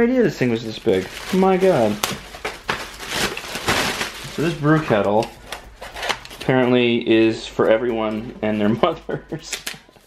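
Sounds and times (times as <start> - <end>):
packaging rustling: 0.2 - 6.5.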